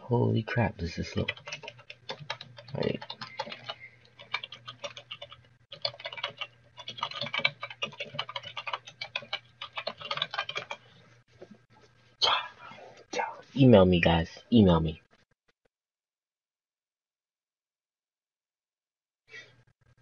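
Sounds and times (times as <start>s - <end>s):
typing on computer keyboard: 1.2s - 10.8s.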